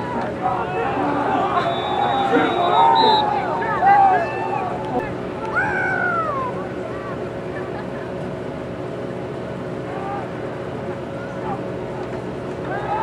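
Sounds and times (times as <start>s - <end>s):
people shouting: 0.0s - 6.6s, 9.9s - 10.4s, 12.6s - 13.0s
steady background hum: 0.0s - 13.0s.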